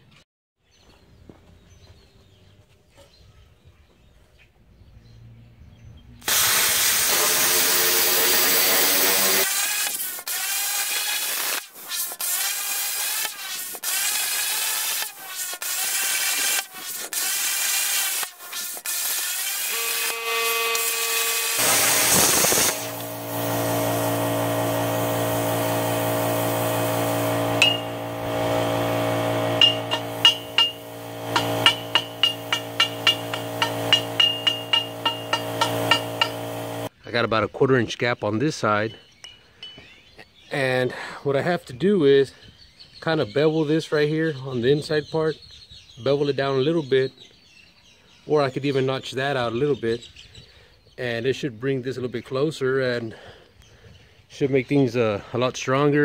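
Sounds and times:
plasma cutter hissing: 6.2s - 36.9s
steady hum: 19.7s - 36.9s.

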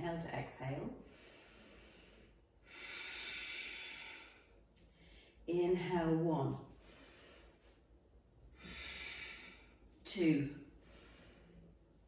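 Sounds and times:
woman breathing deeply: 1.0s - 5.4s, 6.7s - 10.0s, 10.6s - 12.0s.

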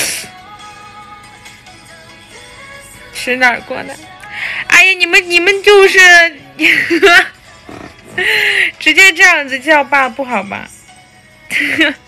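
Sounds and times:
woman speaking: 3.2s - 4.1s, 4.7s - 7.3s, 8.8s - 10.8s
woman's stifled laugh: 11.5s - 12.0s.

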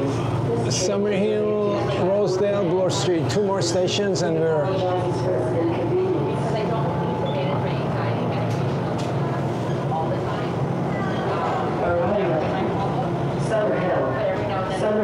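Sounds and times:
faint voices: 0.0s - 15.0s
subway train rumbling: 4.6s - 15.0s.

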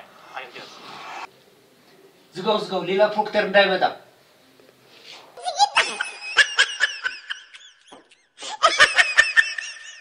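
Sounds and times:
high-pitched laugh: 5.4s - 10.0s.

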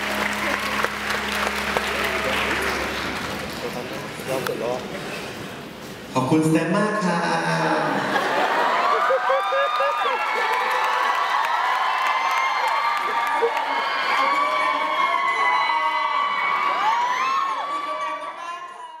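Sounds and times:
audience cheering and screaming: 0.0s - 3.2s, 8.0s - 18.4s.

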